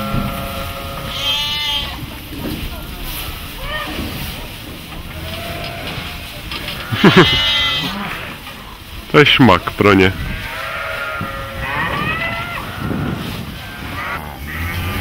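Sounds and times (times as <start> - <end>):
young cattle bawling: 6.8 - 8.4, 10.2 - 15.0.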